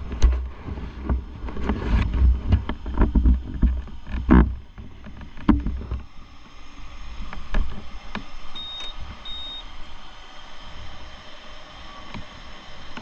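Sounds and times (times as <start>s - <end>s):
high beeps: 8.6s - 9.6s.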